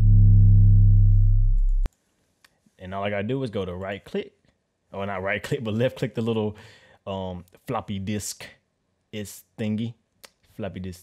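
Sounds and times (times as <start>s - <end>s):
deep sustained bass tone: 0.0s - 1.9s.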